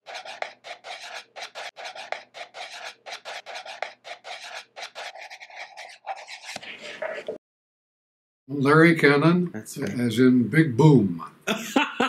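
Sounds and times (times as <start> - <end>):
marker pen scratching on board: 0.0 - 7.4.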